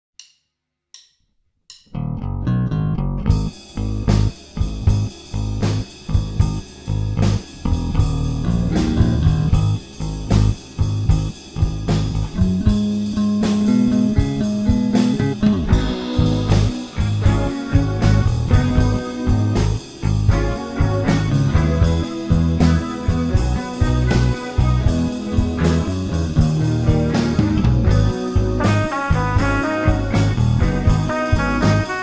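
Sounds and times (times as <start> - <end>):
rock band playing: 2.8 - 32.0.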